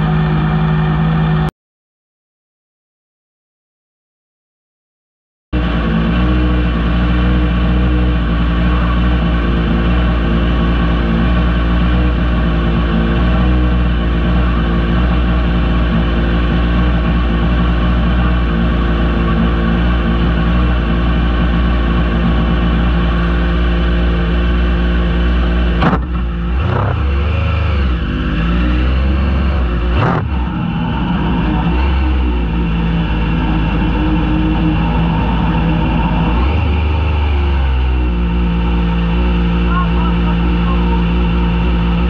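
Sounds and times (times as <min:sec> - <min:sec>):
engine idling: 0:00.0 - 0:01.5, 0:05.6 - 0:42.0.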